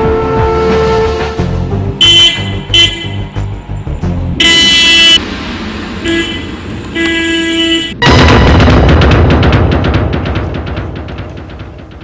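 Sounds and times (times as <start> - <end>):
background music with low beat: 0.0 - 12.0
car horn honking: 2.0 - 3.2, 4.4 - 5.2, 6.0 - 8.3.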